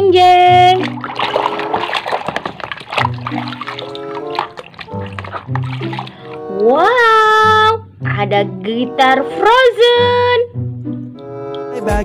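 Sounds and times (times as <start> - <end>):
background music with bass note: 0.0 - 12.0
water splashing in a plastic basin: 0.3 - 6.8.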